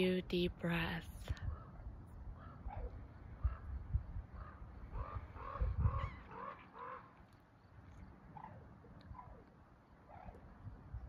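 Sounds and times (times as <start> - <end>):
wind rumbling on microphone: 0.0 - 11.0
faint short animal calls: 4.3 - 7.2.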